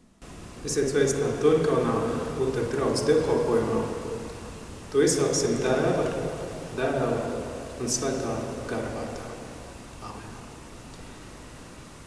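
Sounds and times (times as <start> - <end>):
man speaking: 0.6 - 4.1, 4.9 - 9.4, 10.0 - 10.5.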